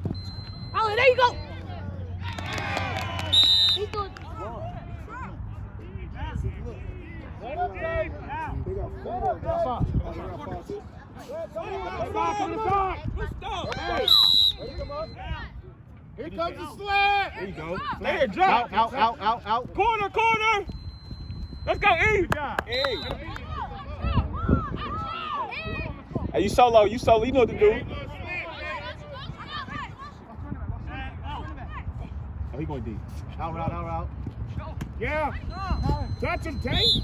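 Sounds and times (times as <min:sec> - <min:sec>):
voices calling out and talking: 0:00.0 - 0:37.0.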